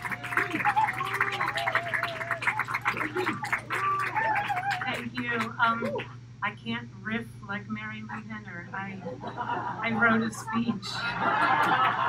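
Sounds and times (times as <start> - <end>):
audience applauding: 0.0 - 6.0.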